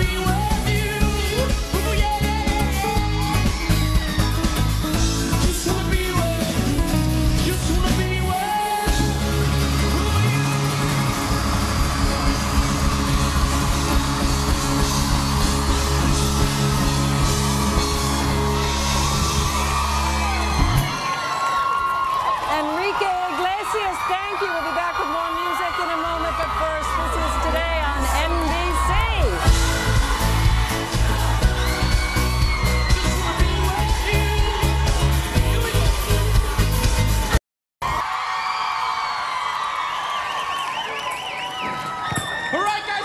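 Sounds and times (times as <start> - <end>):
live pop band: 0.0 - 22.2, 25.3 - 38.0
crowd screaming and cheering: 0.0 - 43.0.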